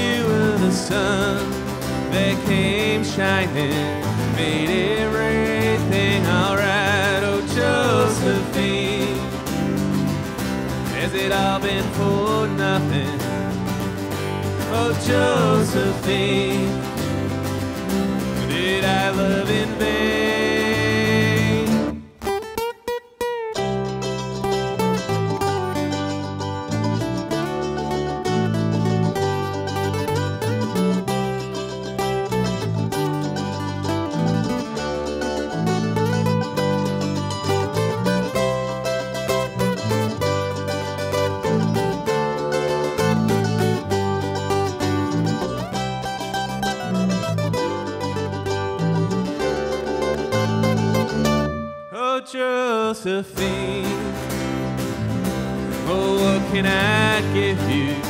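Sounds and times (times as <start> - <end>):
upright bass walking line: 0.0 - 22.4, 23.6 - 51.7, 53.4 - 58.0
mandolin: 0.0 - 52.1, 53.3 - 58.0
acoustic guitar: 0.0 - 58.0.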